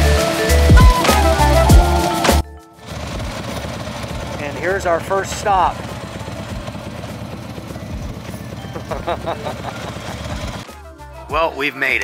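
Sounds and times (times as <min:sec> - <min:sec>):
motorcycle engine running slowly: 0:02.8 - 0:10.7.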